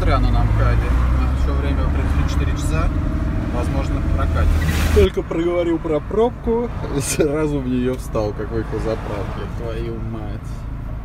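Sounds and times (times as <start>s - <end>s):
vehicle engine and road drone: 0.0s - 11.0s.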